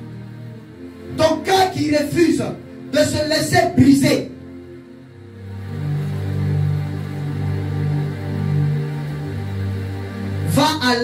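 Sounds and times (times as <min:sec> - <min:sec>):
slow music of low chords: 0:00.0 - 0:11.0.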